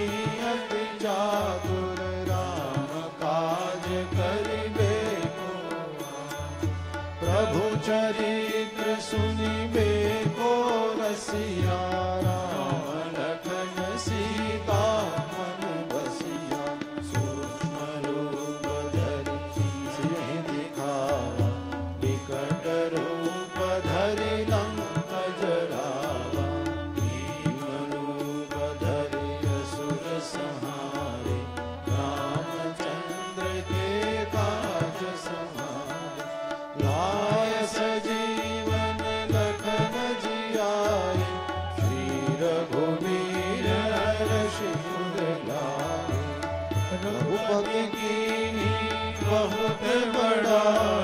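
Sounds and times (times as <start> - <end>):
instrumental accompaniment: 0.0 - 51.0.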